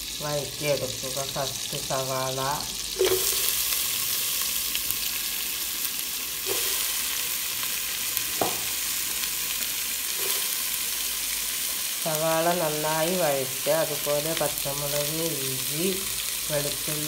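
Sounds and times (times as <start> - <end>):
onions sizzling in a pan: 0.0 - 17.0.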